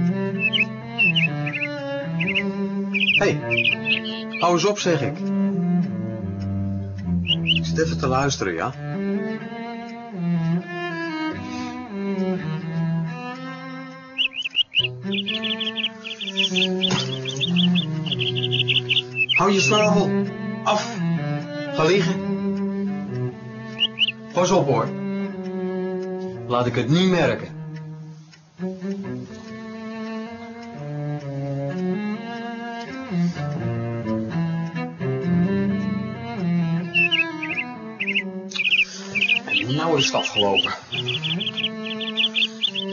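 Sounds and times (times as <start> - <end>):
bird chirping: 0.0 - 5.1, 6.4 - 8.4, 14.0 - 20.2, 23.1 - 24.7, 36.2 - 42.9
slow cello melody: 0.0 - 42.9.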